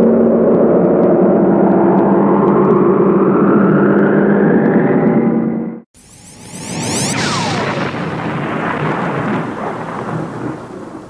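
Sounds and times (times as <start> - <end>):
deep thunder-like rumble: 6.9 - 11.0.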